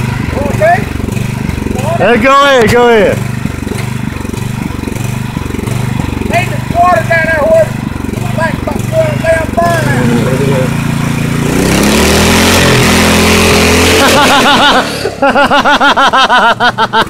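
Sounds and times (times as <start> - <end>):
lawn mower engine revving: 0.0 - 17.0
people laughing: 9.6 - 10.9, 14.0 - 17.0.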